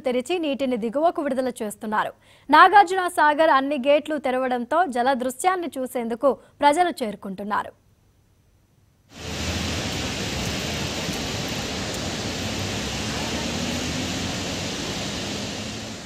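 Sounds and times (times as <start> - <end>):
floodwater rushing through spillway: 9.1 - 16.0.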